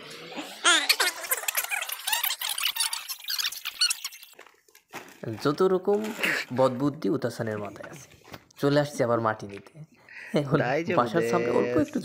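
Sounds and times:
high-pitched squeaky chirps: 0.6s - 4.4s.

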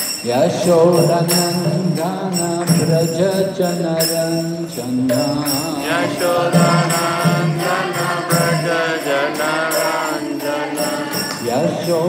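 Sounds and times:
small hand cymbals ringing: 0.0s - 12.0s
man singing into a microphone: 0.2s - 12.0s
hand drum: 4.8s - 8.9s.

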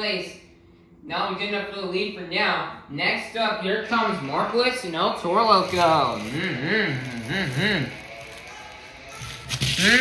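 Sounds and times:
person humming engine imitation: 5.8s - 8.1s, 9.6s - 10.0s.

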